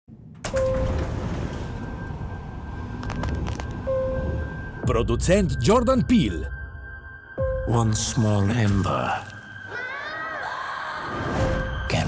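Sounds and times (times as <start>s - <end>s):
elevator chime dinging: 0.5s - 3.0s.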